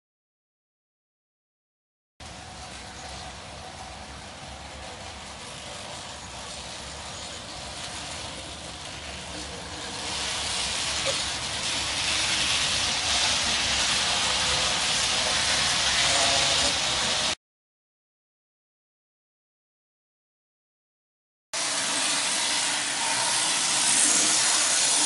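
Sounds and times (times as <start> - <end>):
model train running on rails: 2.2 - 17.4, 21.6 - 25.0.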